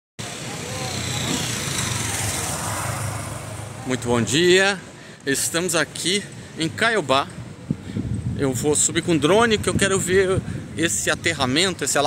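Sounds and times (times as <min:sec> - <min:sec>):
road vehicle passing: 0:00.2 - 0:06.6
man speaking: 0:03.8 - 0:07.3.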